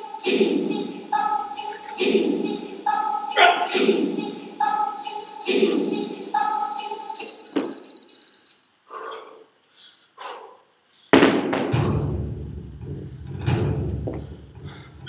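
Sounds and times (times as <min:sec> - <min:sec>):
background voice or music: 0:00.0 - 0:07.4
high electronic beeping: 0:05.0 - 0:08.7.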